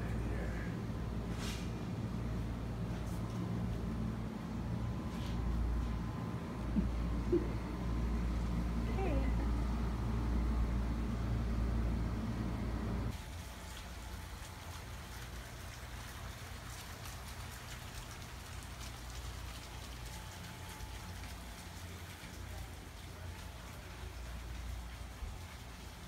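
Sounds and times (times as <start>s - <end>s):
low steady hum: 0.0s - 26.0s
fountain water trickling: 13.1s - 26.0s.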